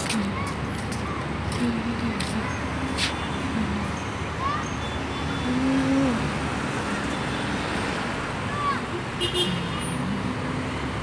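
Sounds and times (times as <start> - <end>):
road traffic hum: 0.0 - 11.0.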